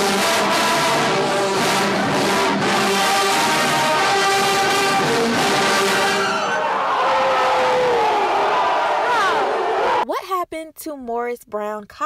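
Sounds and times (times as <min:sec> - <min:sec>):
brass band playing: 0:00.0 - 0:07.0
people shouting: 0:00.0 - 0:10.0.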